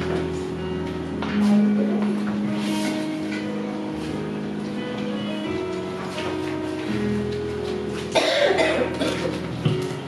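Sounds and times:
soft guitar music: 0.0s - 10.0s
person coughing: 8.2s - 9.3s.

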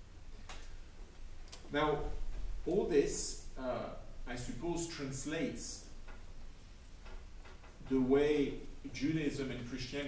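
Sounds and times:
man speaking: 1.7s - 5.9s, 7.9s - 10.0s.

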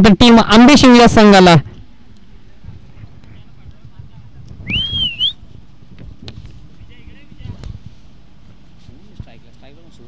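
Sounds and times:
person whistling: 4.6s - 5.4s.

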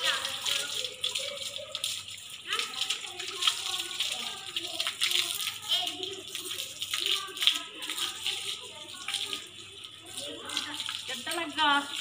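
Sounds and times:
hose water splashing: 0.0s - 12.0s
voices: 0.0s - 12.0s.

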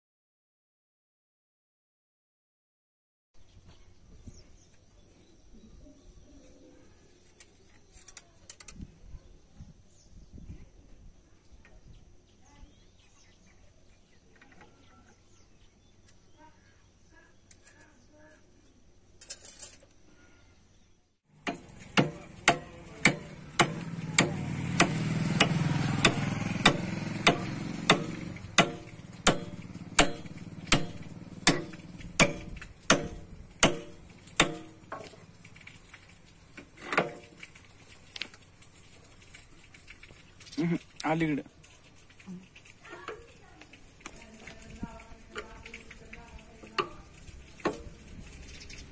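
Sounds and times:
hammer striking steel bar: 21.4s - 34.8s.

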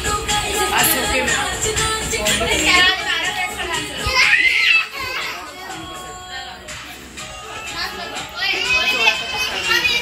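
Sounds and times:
children chattering: 2.4s - 10.0s
children shouting at play: 3.9s - 6.0s, 7.7s - 10.0s
child's high cry: 4.1s - 5.4s, 8.4s - 10.0s.

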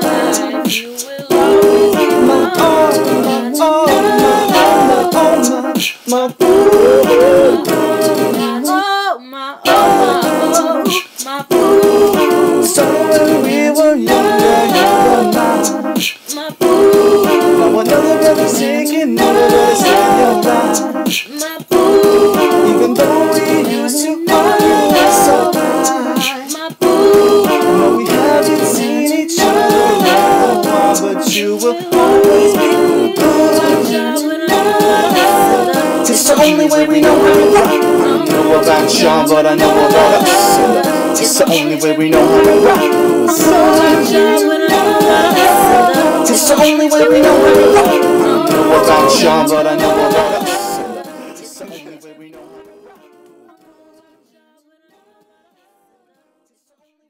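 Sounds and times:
man and woman singing a cappella: 0.0s - 57.0s.

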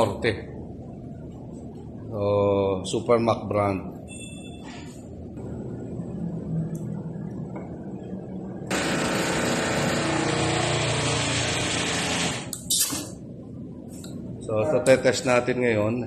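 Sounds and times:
electric motor and pump humming: 8.7s - 12.6s.

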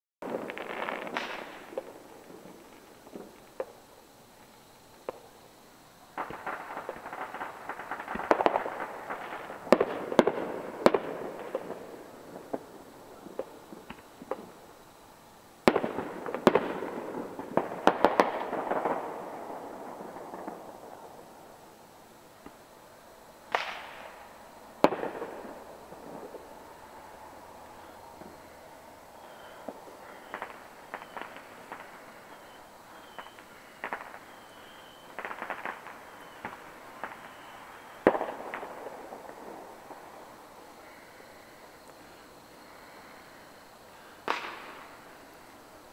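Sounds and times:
fireworks bangs: 0.2s - 5.5s, 6.1s - 15.0s, 15.6s - 21.6s, 23.4s - 45.9s
small fireworks pops: 0.2s - 14.9s, 15.6s - 21.3s, 22.4s - 22.8s, 23.5s - 26.8s, 27.6s - 43.3s, 44.0s - 45.9s
fireworks crackling: 0.2s - 45.9s.

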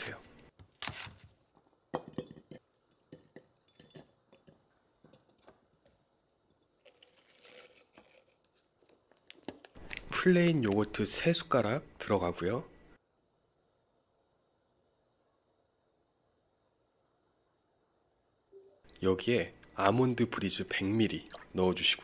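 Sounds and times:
fruit clinking in glass jar: 1.9s - 5.3s.

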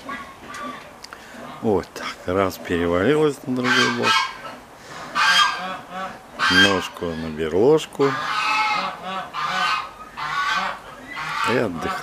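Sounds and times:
bird calling: 3.4s - 12.0s.

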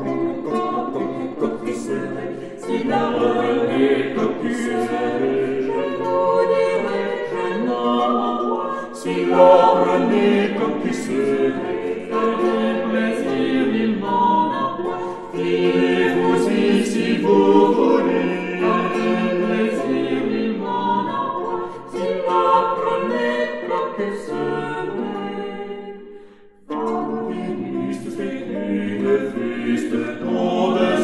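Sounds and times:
vocal ensemble singing polyphony: 0.0s - 31.0s.

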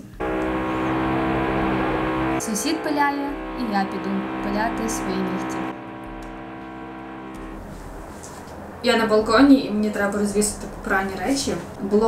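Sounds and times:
outdoor traffic ambience: 0.0s - 12.0s
steady pitched hum: 0.0s - 12.0s
woman's voice: 2.4s - 5.6s, 8.8s - 12.0s.

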